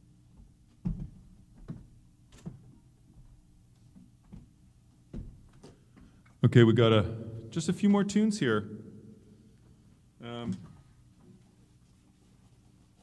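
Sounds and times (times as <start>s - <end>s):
knocks and thumps on a stage: 5.1s - 5.5s.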